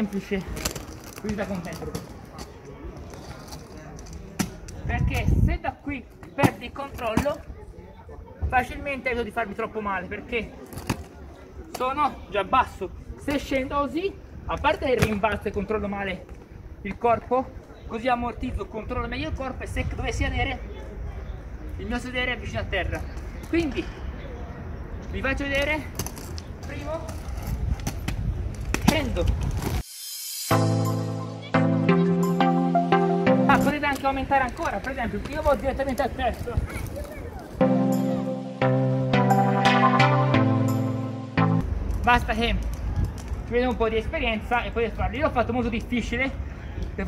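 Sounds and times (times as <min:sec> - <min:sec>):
skate wheels rolling on stone: 0:00.0 - 0:05.3, 0:25.2 - 0:29.9, 0:33.5 - 0:37.6, 0:41.6 - 0:44.5.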